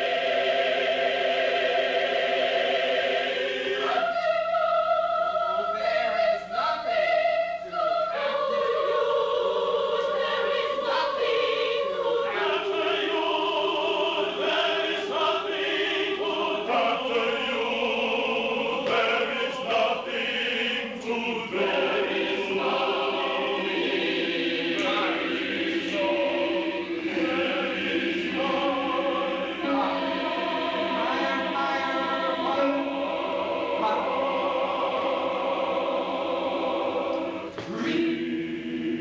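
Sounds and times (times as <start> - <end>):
mixed choir singing: 0.0 - 39.0.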